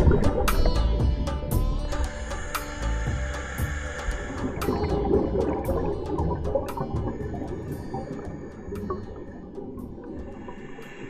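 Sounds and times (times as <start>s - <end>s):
low underwater rumble: 0.0s - 11.0s
faint clicks: 4.1s - 11.0s.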